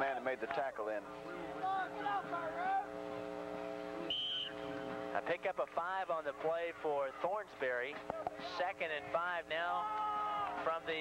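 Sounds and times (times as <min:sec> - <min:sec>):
steady broadcast hum: 0:00.0 - 0:11.0
referee's whistle blast: 0:04.1 - 0:04.7.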